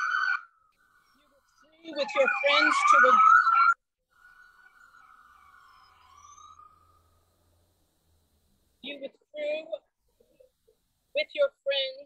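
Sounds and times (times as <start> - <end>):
faint wailing siren: 0.0 - 8.6.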